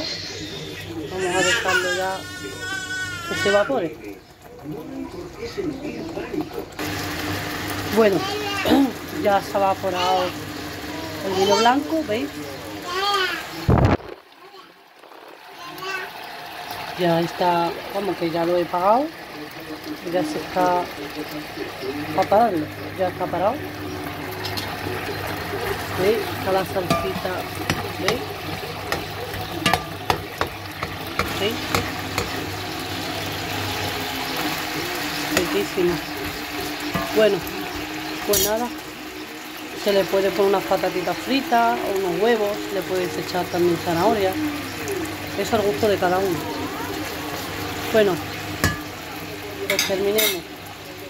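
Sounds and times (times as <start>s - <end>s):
sauce boiling hard in a pot: 0.0s - 51.0s
metal skimmer knocking on pan: 26.6s - 32.5s, 36.2s - 37.4s, 48.6s - 49.0s, 49.7s - 50.4s.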